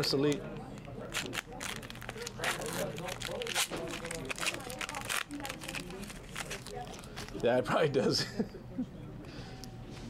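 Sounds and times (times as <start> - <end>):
wrapper being torn and crinkled: 0.3 - 7.4.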